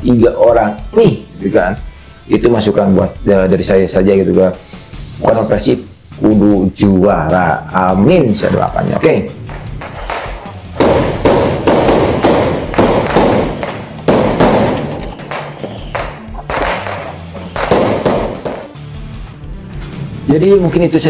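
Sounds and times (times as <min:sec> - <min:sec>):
music: 0:00.0 - 0:21.0
firework bangs: 0:09.5 - 0:18.8.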